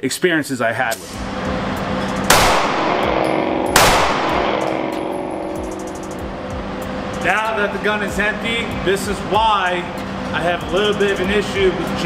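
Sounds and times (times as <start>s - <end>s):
pistol shot echoing: 2.3s - 5.2s.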